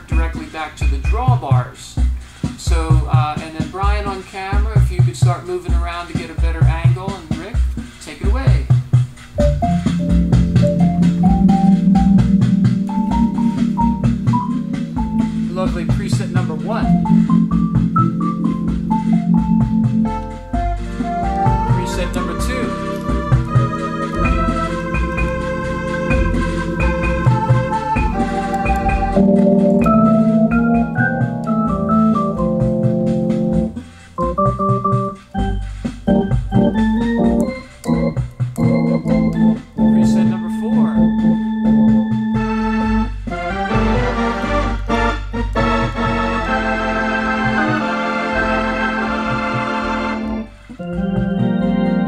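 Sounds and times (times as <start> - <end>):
automatic rhythm accompaniment: 0.0 - 52.0
electronic organ melody and chords: 0.0 - 52.0.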